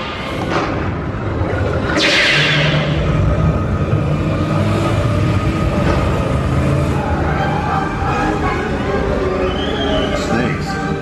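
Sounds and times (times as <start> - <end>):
droning low tones: 0.0 - 9.6.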